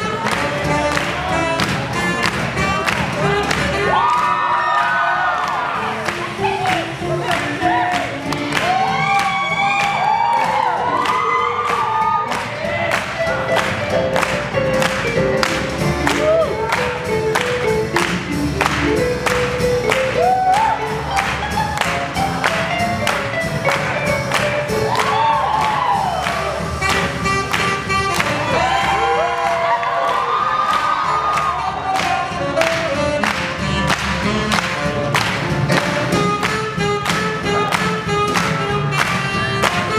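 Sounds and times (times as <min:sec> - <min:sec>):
live swing band playing: 0:00.0 - 0:39.9
crowd cheering: 0:00.8 - 0:06.7, 0:07.3 - 0:17.1, 0:19.4 - 0:27.3, 0:28.1 - 0:32.8.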